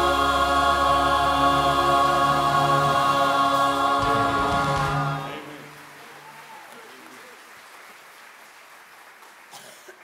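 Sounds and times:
church choir singing: 0.0s - 6.2s.

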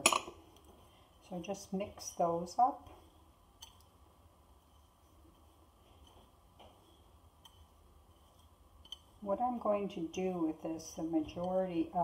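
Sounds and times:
faint ticks of sugar mixing in bowl: 4.6s - 10.0s.

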